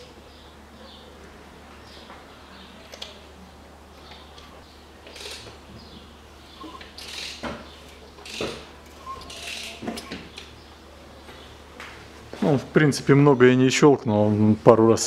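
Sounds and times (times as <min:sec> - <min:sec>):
chain tensioner clicking: 0:07.0 - 0:07.4, 0:09.2 - 0:09.8.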